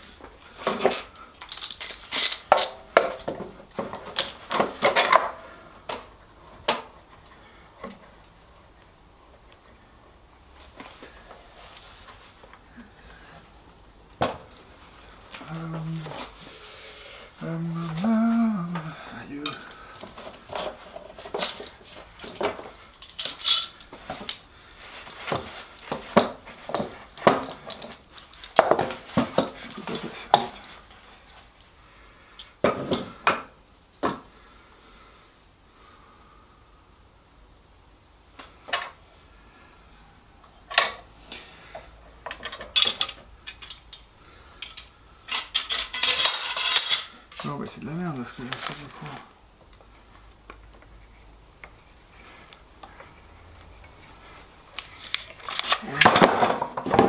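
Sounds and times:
metal clamps clinking: 0.7 - 3.3, 21.4 - 24.4, 42.3 - 47.4
person mumbling: 15.4 - 16.3, 17.4 - 19.8.

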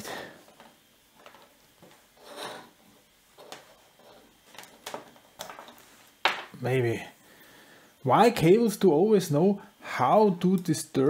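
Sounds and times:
cables rustling: 0.0 - 6.2.

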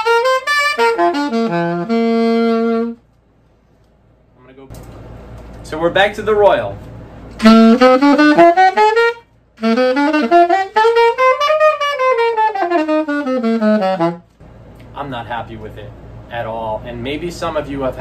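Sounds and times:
alto saxophone: 0.0 - 3.2, 7.3 - 14.4.

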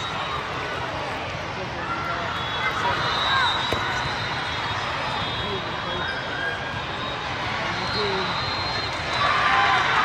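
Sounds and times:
crowd chatter and shouts: 0.0 - 10.0.

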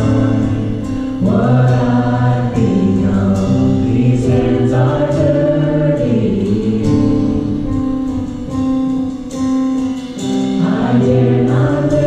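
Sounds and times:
women singing into microphones: 0.0 - 7.8, 10.6 - 12.0
band playing worship music: 0.0 - 12.0.

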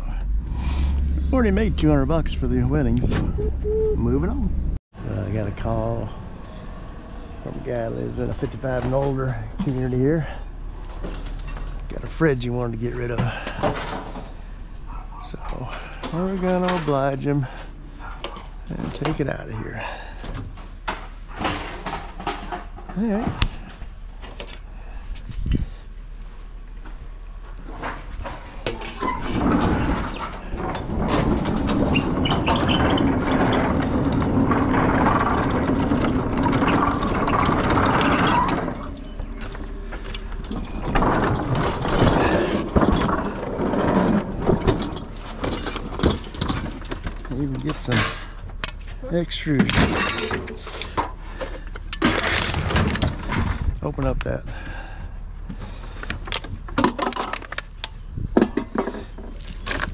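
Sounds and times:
knocks and rattles of handling: 8.2 - 54.7, 55.3 - 59.9
hand truck rolling on concrete: 27.4 - 59.9.

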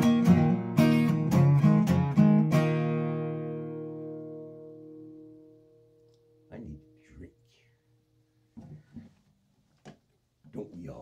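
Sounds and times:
acoustic guitar chord: 0.0 - 7.0.

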